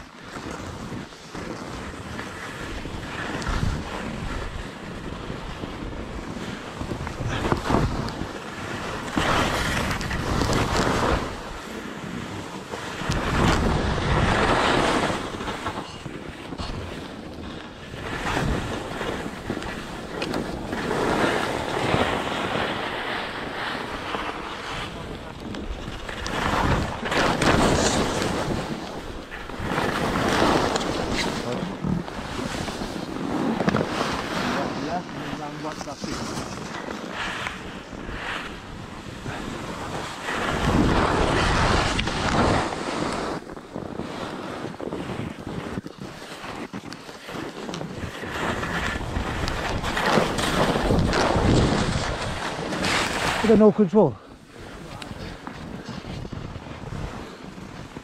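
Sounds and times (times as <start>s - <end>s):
skis scraping over snow: 0.0s - 58.0s
wind buffeting microphone: 0.0s - 58.0s.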